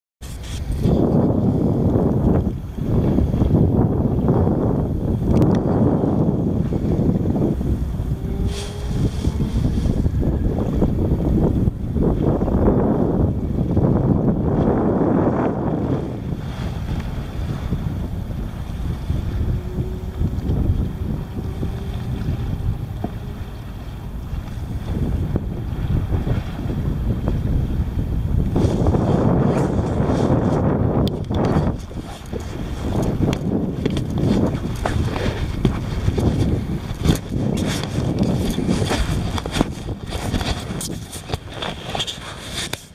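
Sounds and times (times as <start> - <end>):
water lapping against hull: 0.2 - 42.9
wind buffeting microphone: 0.2 - 42.9.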